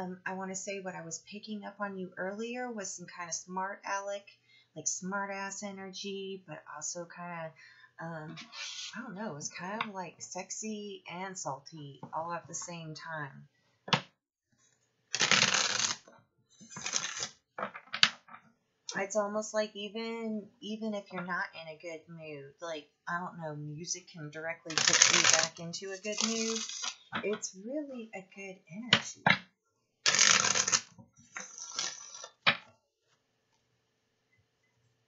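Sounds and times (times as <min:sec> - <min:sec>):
cards being shuffled: 0:15.1 - 0:18.2, 0:24.7 - 0:27.3, 0:30.1 - 0:32.7.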